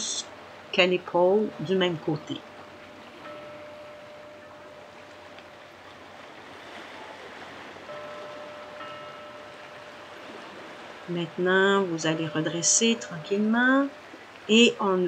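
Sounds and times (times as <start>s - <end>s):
quiet steady rushing noise: 0.0s - 15.0s
faint held tone: 0.8s - 14.5s.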